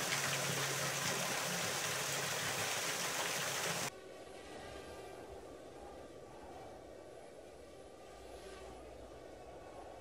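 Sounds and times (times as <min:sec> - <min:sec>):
hose water splashing on metal grating: 0:00.0 - 0:03.9
low hum: 0:03.9 - 0:10.0.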